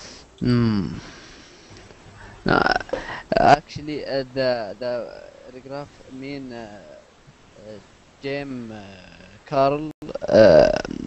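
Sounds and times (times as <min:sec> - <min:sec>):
low line hiss: 0:00.0 - 0:11.0.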